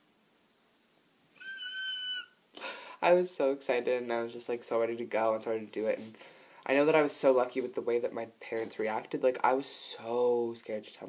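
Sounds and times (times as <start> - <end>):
woman's excited squeal: 1.4 - 2.4
quick breath: 2.6 - 3.0, 6.2 - 6.6.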